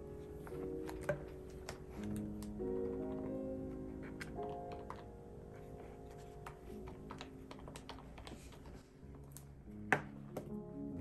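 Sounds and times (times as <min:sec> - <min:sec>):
soft piano music: 0:00.0 - 0:11.0.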